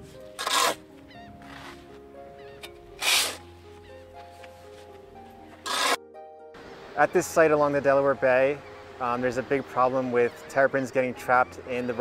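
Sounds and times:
background music: 0.0s - 12.0s
shovels digging into sand: 0.4s - 0.9s, 3.0s - 3.4s, 5.6s - 6.0s.

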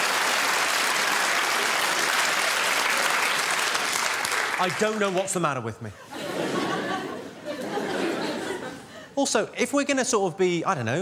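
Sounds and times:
audience laughing: 5.8s - 9.1s.

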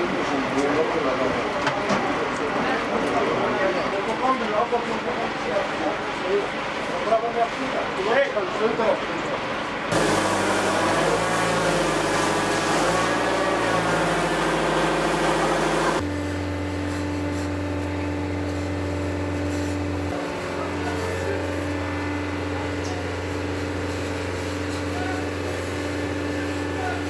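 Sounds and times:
fire hose spraying water: 9.9s - 27.0s.

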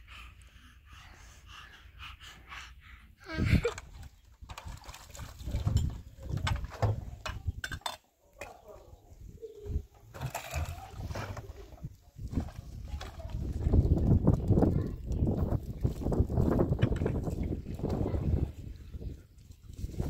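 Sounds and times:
water sloshing: 3.8s - 8.8s.

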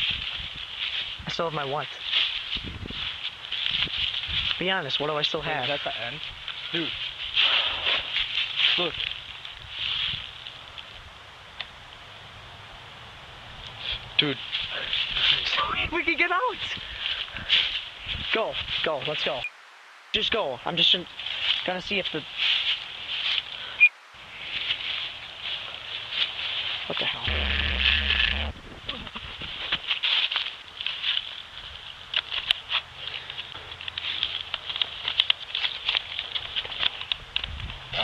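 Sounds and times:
footsteps through leaf litter: 0.0s - 11.1s, 13.8s - 19.4s, 20.7s - 28.4s, 29.3s - 37.6s
person saying a word: 26.9s - 28.5s.

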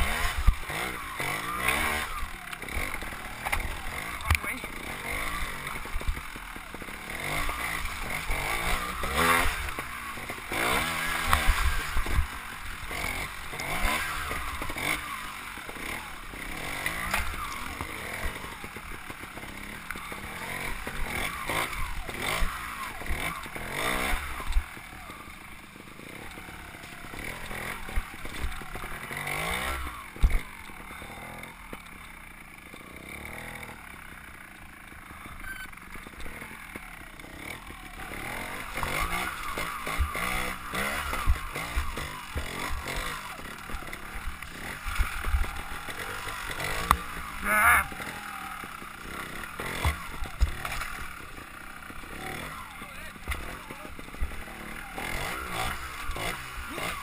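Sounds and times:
motorcycle engine revving: 0.0s - 57.0s
motorcycle knocking over rocks: 0.1s - 25.1s, 26.2s - 30.9s, 35.8s - 57.0s.

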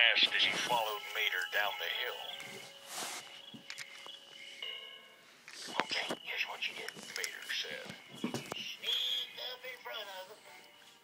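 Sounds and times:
steady high tone: 0.0s - 9.7s
quiet unclear voices: 5.6s - 10.6s.

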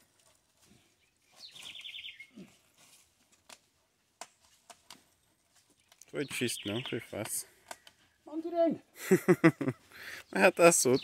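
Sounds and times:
bird trill: 1.3s - 2.4s.

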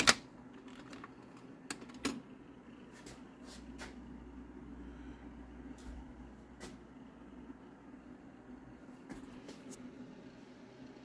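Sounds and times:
low hum: 0.4s - 11.0s.

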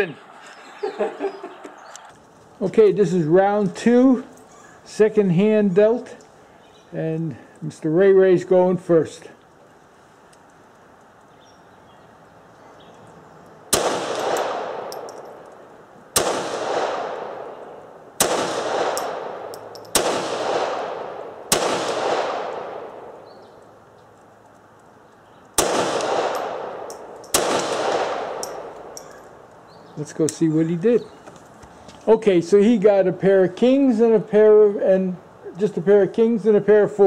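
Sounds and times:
pistol shots with echo: 13.7s - 15.4s, 16.1s - 23.2s, 25.6s - 29.0s.

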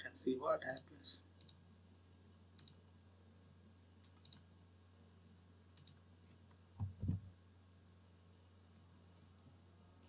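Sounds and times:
faint steady hum: 0.0s - 10.0s
computer mouse clicks: 0.7s - 1.6s, 2.5s - 2.8s, 4.0s - 4.4s, 5.7s - 6.0s.

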